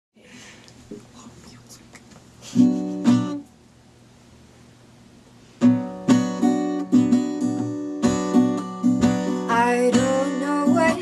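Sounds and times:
low room hum: 0.2s - 5.6s
hushed whispering voices: 1.0s - 2.1s.

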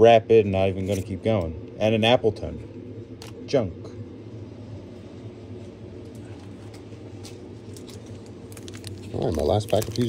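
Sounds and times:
low room hum: 0.0s - 10.0s
handling rustles and ticks: 6.0s - 10.0s.

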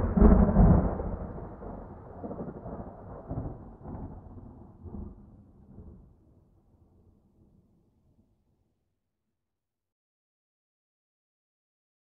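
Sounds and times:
rolling thunder: 0.0s - 6.1s.

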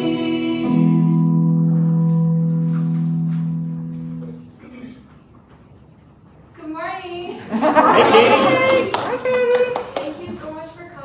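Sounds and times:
hand claps: 8.6s - 10.2s.

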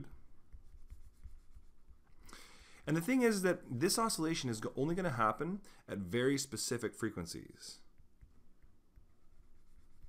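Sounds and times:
stylus writing on tablet: 0.2s - 2.0s, 7.8s - 10.0s.

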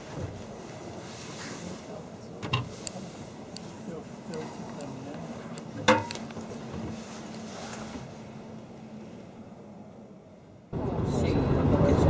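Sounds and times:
train carriage hum: 0.0s - 12.0s.

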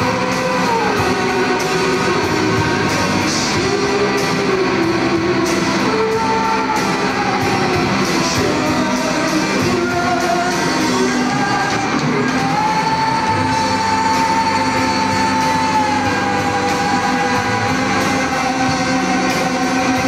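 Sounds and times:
live rock band playing: 0.0s - 20.0s
person singing long high note: 0.0s - 20.0s.

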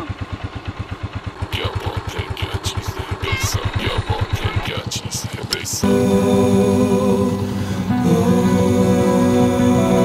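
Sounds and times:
motorcycle engine idling: 0.0s - 10.0s
music: 5.8s - 10.0s.

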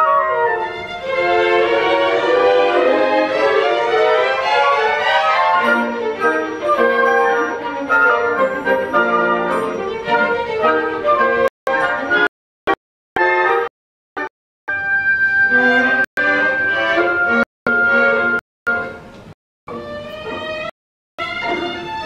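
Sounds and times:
symphony orchestra strings playing: 0.5s - 12.3s, 14.8s - 19.0s, 19.7s - 22.0s.

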